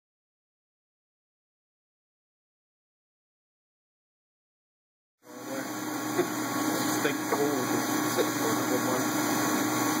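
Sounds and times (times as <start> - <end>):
lathe idling hum: 5.3 - 10.0.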